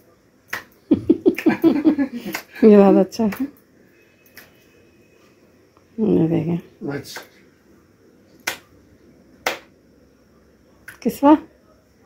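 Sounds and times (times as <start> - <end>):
hand slaps: 0.5 - 1.6, 2.3 - 2.5, 3.3 - 3.5, 7.1 - 7.3, 8.4 - 8.7, 9.4 - 9.7.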